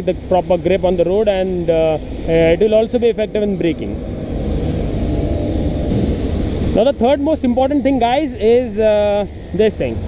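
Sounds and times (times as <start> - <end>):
wind buffeting microphone: 0.9 - 10.0.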